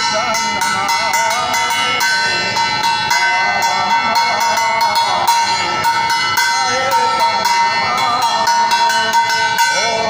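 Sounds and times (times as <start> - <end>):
bell rung rapidly: 0.0 - 10.0
man singing through a microphone: 0.0 - 10.0.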